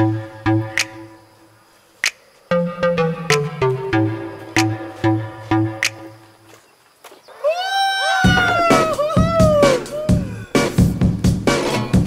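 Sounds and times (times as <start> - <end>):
music beat: 0.0 - 1.2, 2.0 - 6.2, 8.3 - 12.0
high-pitched drawn-out cry: 7.4 - 10.6.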